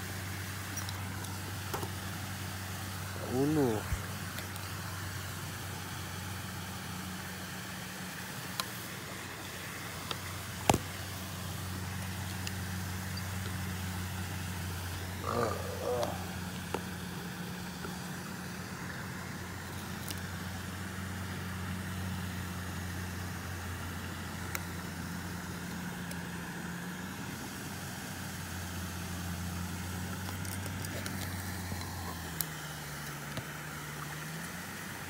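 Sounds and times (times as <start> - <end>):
motor droning: 0.0 - 35.0.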